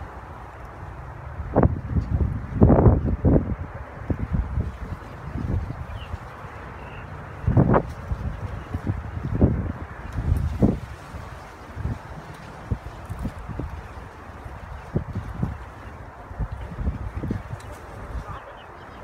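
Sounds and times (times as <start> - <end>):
wind gusting on microphone: 0.0 - 19.0
leaves rustling: 4.5 - 19.0.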